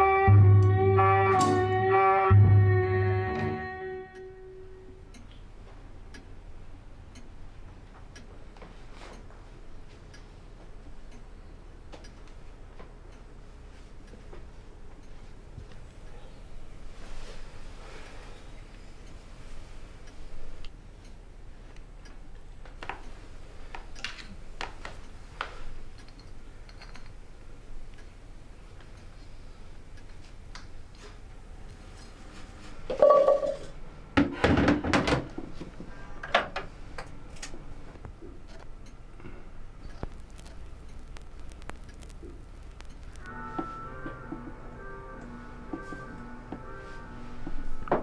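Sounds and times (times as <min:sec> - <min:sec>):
low room hum: 0:00.0 - 0:48.0
clock ticking: 0:05.0 - 0:16.0, 0:38.0 - 0:46.7.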